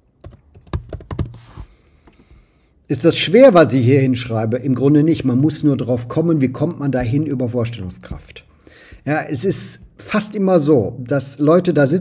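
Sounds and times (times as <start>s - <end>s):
computer keyboard typing: 0.2s - 1.5s.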